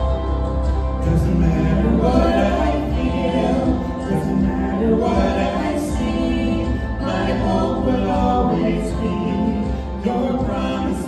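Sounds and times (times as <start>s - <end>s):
instrumental accompaniment with bass: 0.0s - 11.0s
vocal trio singing: 0.0s - 11.0s.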